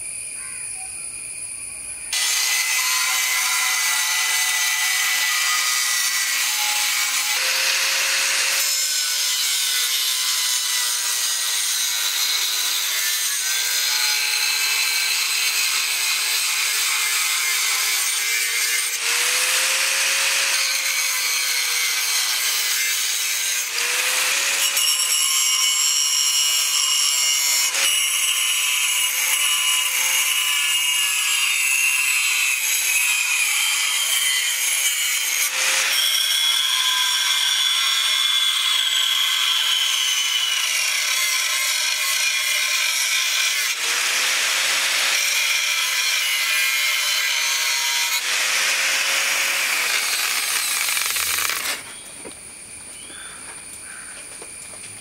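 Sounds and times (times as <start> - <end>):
angle grinder cutting metal: 2.1 - 52.0
grinder motor whine: 47.6 - 52.4.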